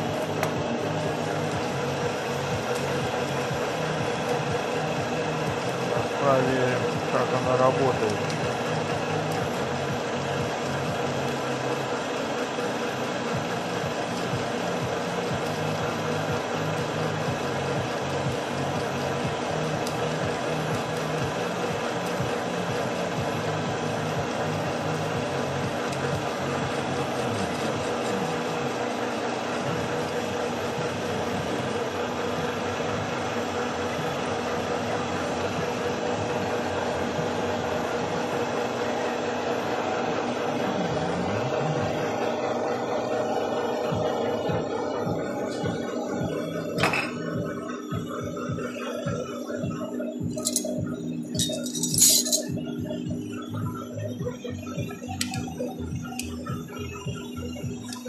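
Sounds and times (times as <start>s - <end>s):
machine humming with steady whine: 0.0s - 58.0s.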